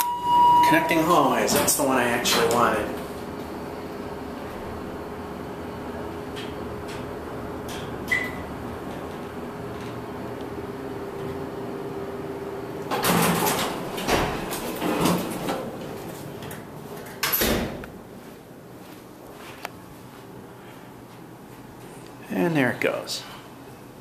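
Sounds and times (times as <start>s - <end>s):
short high beep: 0.0s - 1.0s
elevator humming: 0.0s - 22.0s
elevator doors rattling open: 0.6s - 11.8s, 12.6s - 17.8s.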